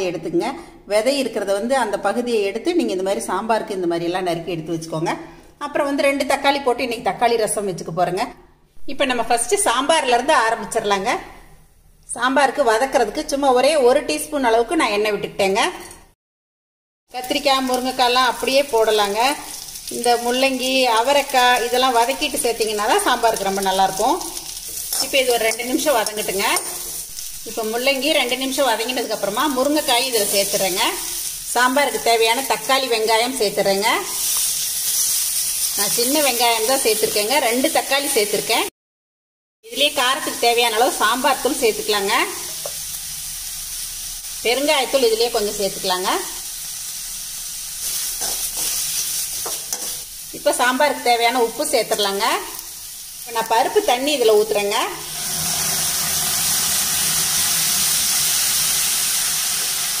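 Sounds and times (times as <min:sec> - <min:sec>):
vegetables sizzling in oil: 0:17.1 - 0:38.7, 0:39.7 - 1:00.0
water poured into hot pan: 0:55.0 - 1:00.0.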